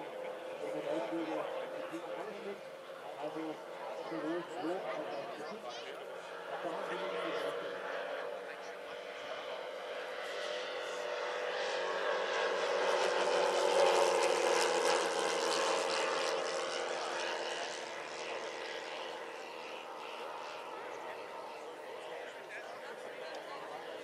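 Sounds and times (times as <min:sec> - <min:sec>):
model airplane engines droning: 0:00.0 - 0:24.0.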